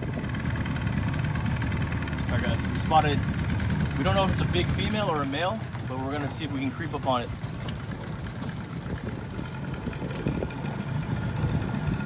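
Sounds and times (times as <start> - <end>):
outboard motor idling: 0.0 - 12.0.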